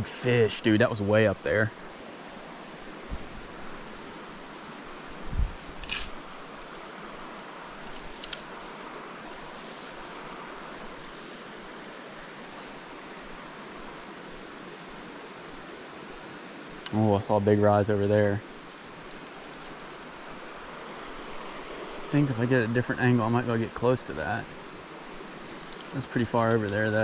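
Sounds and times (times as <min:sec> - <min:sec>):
stream water rushing: 0:00.0 - 0:27.0.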